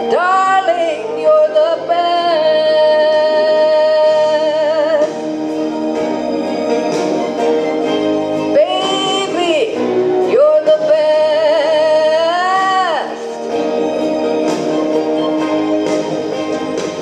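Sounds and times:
woman singing with vibrato: 0.0 - 5.2, 8.5 - 13.4
instrumental accompaniment: 0.0 - 17.0.

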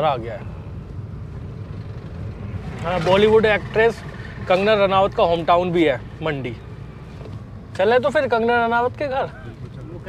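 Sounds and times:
car engine and road noise: 0.0 - 10.0
man talking: 2.8 - 6.6, 7.7 - 10.0.

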